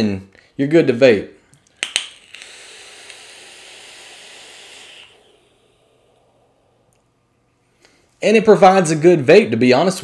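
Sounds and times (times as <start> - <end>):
vape hiss and coil sizzle: 1.7 - 7.1.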